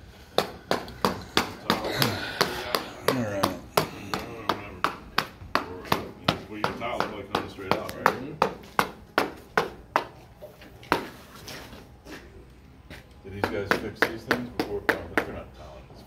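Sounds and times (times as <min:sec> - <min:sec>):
hammer striking: 0:00.4 - 0:10.2.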